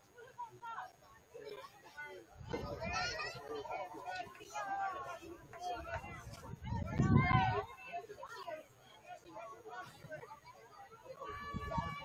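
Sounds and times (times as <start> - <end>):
distant people shouting: 11.2 - 12.0.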